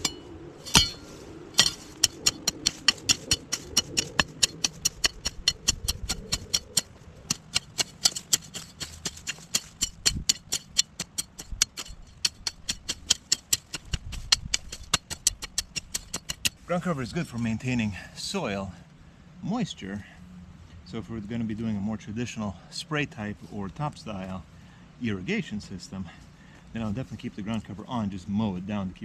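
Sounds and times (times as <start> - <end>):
hoe chopping and scraping soil: 0.0 - 17.4.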